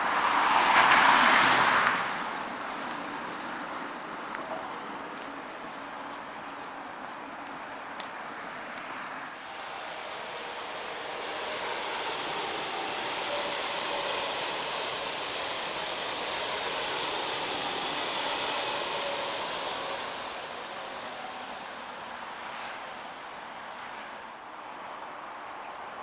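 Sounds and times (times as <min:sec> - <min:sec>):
train passing: 0:00.0 - 0:26.0.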